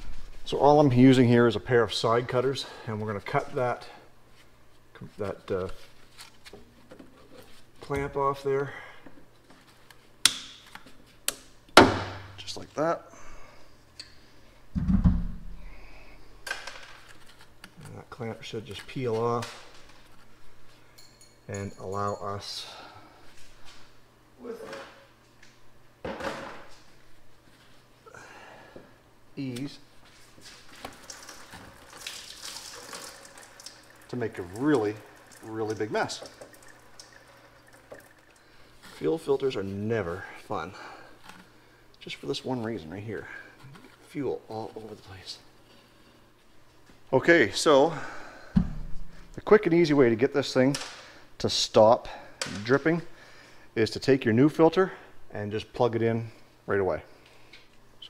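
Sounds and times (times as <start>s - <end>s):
faint trickle of dripping fuel: 31.0s - 38.8s.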